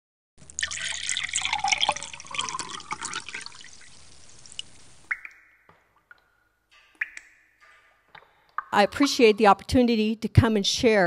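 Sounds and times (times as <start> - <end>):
water pouring and trickling: 0.4 - 9.4.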